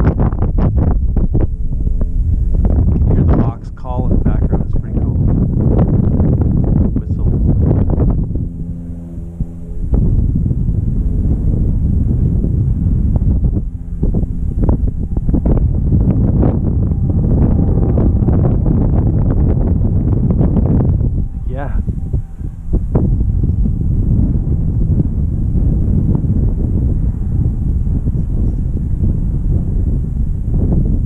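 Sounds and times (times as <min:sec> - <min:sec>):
steady hum with overtones: 0:00.0 - 0:31.0
wind buffeting microphone: 0:00.0 - 0:31.0.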